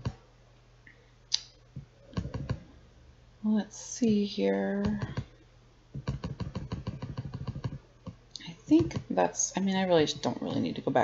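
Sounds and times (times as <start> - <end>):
mouse scroll wheel clicking: 6.0 - 7.8.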